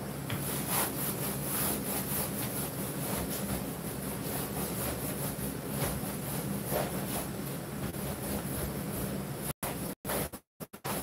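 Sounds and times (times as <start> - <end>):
paint roller rubbing on screen: 0.4 - 11.0.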